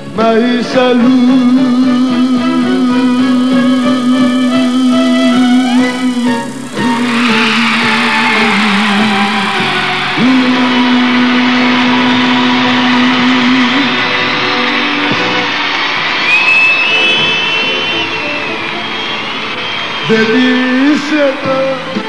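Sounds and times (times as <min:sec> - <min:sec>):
band playing plucked strings: 0:00.0 - 0:22.0
high sliding melody line: 0:01.0 - 0:15.9.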